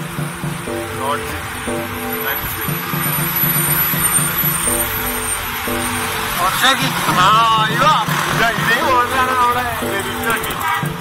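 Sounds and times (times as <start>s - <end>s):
engine and road noise: 0.0s - 11.0s
music with long chords: 0.0s - 11.0s.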